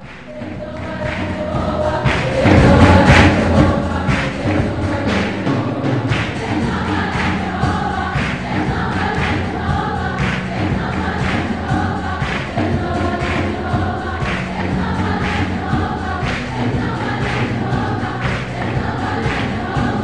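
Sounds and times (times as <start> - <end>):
choir singing a hymn: 0.0 - 20.0
instrumental accompaniment: 0.0 - 20.0.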